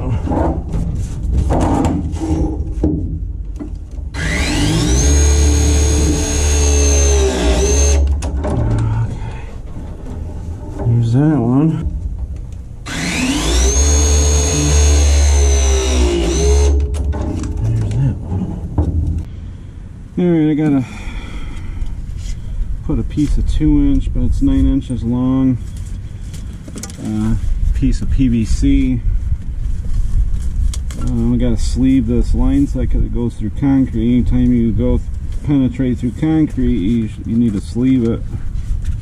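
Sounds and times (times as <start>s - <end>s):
press tool motor whine: 4.2s - 8.1s, 12.8s - 16.8s
heavy low drone: 8.4s - 13.6s.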